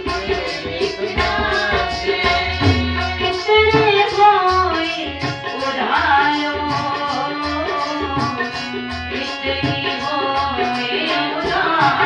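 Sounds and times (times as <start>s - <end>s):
harmonium chords: 0.0s - 12.0s
woman singing: 0.1s - 8.5s, 9.1s - 12.0s
tabla strokes: 0.1s - 12.0s.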